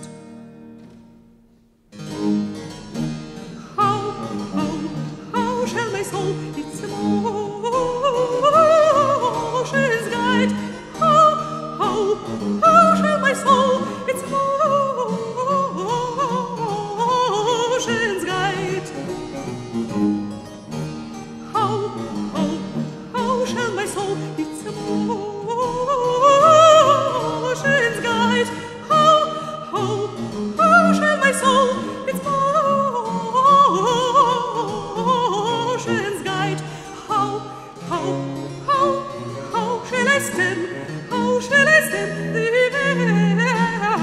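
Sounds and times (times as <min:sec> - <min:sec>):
soprano voice singing: 0:03.6 - 0:19.6, 0:21.5 - 0:44.0.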